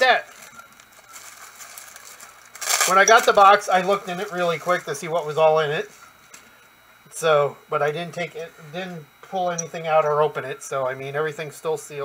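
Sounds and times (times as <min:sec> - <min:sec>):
plastic wrapping crinkling: 0:00.0 - 0:06.5.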